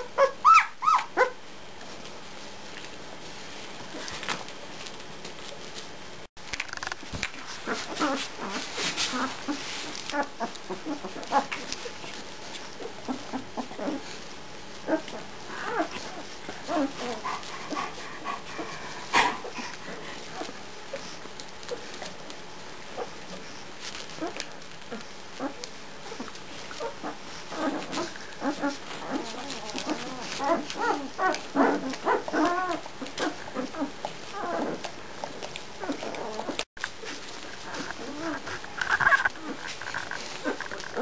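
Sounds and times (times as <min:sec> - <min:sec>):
puppies squeaking and whimpering: 0:00.0 - 0:01.4, 0:07.5 - 0:14.2, 0:14.8 - 0:22.1, 0:22.9 - 0:41.0.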